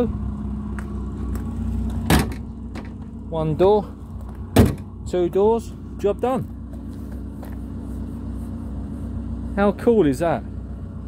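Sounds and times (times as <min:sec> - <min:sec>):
van engine idling: 0:00.0 - 0:11.0.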